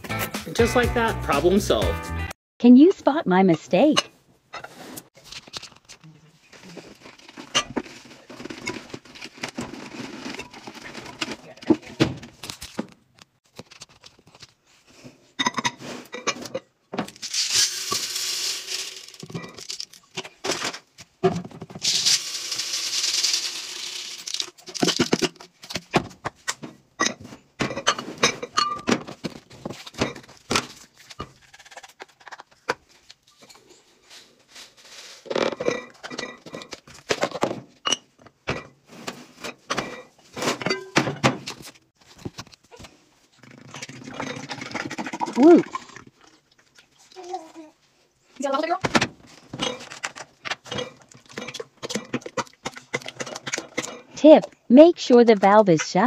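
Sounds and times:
glass lids and jars clinking: 15.4 - 20.2, 27.0 - 29.1, 35.5 - 36.8, 39.5 - 41.1, 49.6 - 54.1
dry powder poured into glass jar: 17.2 - 19.7, 21.8 - 24.5.

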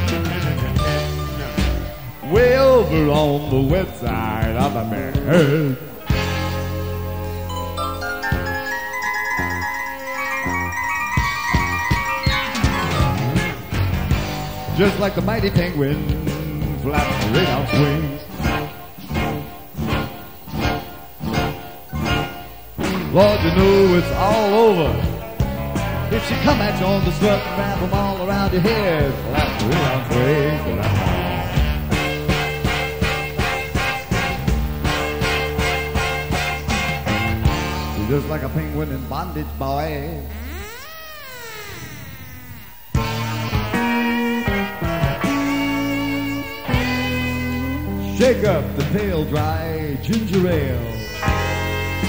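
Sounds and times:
live rock band playing: 0.0 - 40.6, 42.0 - 52.0
full-band accented hits: 0.0 - 52.0.

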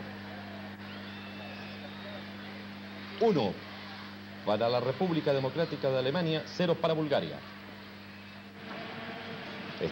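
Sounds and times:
low electrical hum: 0.0 - 9.9.

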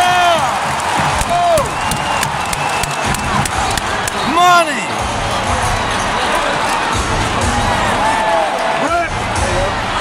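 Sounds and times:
fans whooping: 0.0 - 4.7
crowd cheering loudly: 0.0 - 10.0
sharp claps: 0.4 - 4.2.

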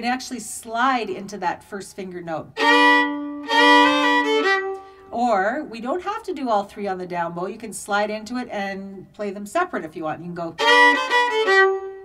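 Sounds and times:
fiddle playing double stops: 2.6 - 5.1, 10.6 - 12.0.

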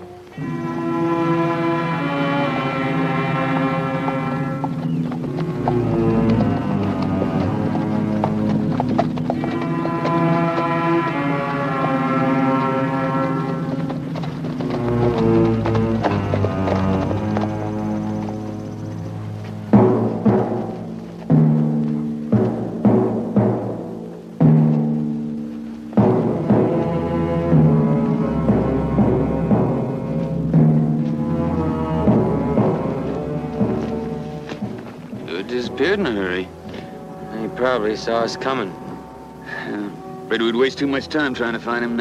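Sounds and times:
horses' hooves clip-clopping: 0.0 - 42.0
orchestral brass and string chords: 0.0 - 42.0.

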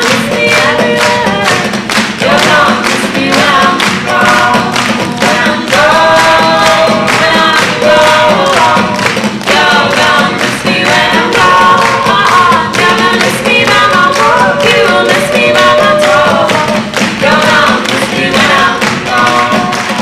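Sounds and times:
sharp percussive beat: 0.0 - 20.0
voices singing together: 0.0 - 20.0.

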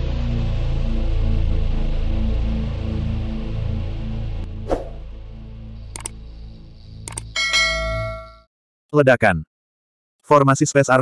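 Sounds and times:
quick clicks: 5.9 - 6.2, 7.0 - 7.4
bell-like ding: 7.4 - 8.5.

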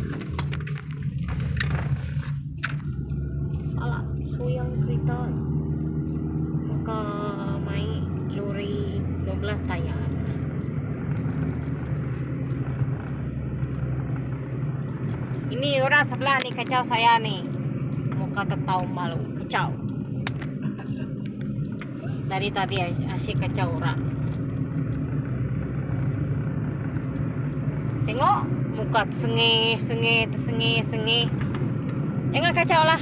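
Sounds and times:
car engine and tyre hum: 0.0 - 33.0.

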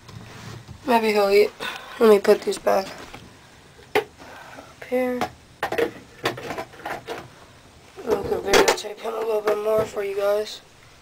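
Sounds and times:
knocks and rustles of handling: 0.0 - 0.9.

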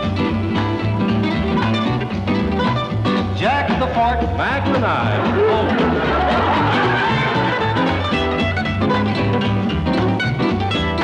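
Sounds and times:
bass beat: 0.0 - 11.0
mandolin and guitar picking: 0.0 - 11.0
person's voice: 3.4 - 6.0.

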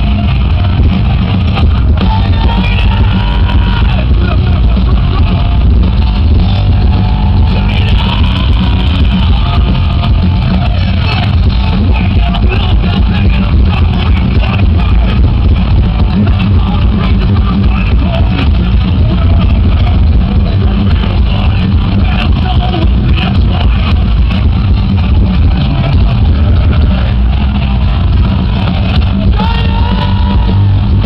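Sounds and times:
thrash metal band playing live: 0.0 - 31.0.

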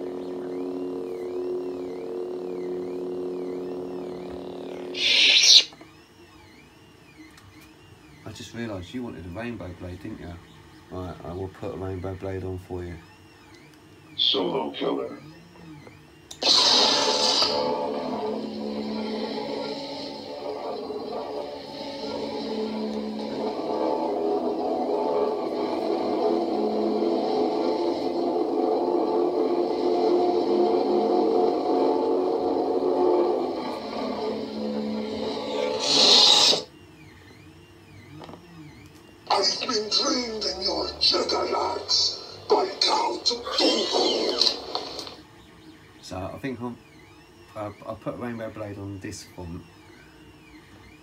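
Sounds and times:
lightsaber humming: 0.0 - 5.8, 14.1 - 36.7, 37.4 - 45.1
lightsaber ignition burst: 4.9 - 5.7, 16.4 - 17.8, 35.6 - 36.7
lightsaber retraction burst: 4.9 - 5.7, 16.4 - 17.8, 35.6 - 36.7.

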